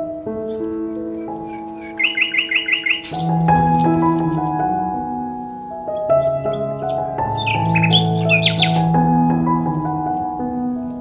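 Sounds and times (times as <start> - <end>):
soft instrumental music: 0.0 - 11.0
high bird-like chirps trill: 0.8 - 3.5, 6.5 - 9.0.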